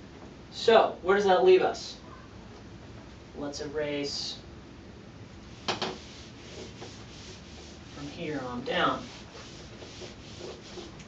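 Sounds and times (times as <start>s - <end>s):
eraser wiping whiteboard: 5.5s - 11.0s.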